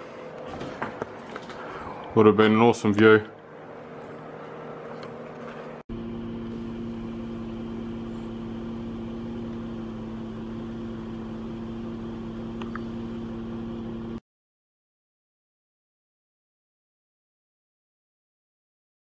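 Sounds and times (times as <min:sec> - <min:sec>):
mechanical hum with low tones: 0:00.0 - 0:14.2.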